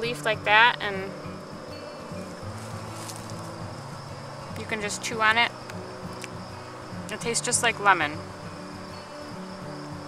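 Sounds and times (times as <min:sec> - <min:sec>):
flying insect buzzing: 0:00.0 - 0:10.0.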